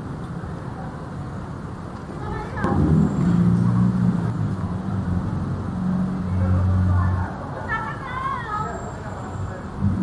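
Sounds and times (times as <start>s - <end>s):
vehicle engine humming: 1.6s - 10.0s
people's voices: 2.0s - 10.0s.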